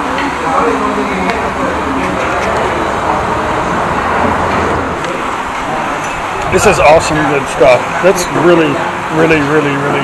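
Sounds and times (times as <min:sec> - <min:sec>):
road traffic noise: 0:00.0 - 0:10.0
heavy vehicle low rumble: 0:00.7 - 0:08.4.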